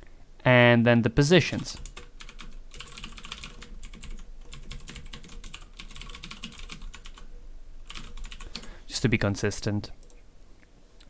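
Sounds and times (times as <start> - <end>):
computer keyboard typing: 1.7 - 8.7.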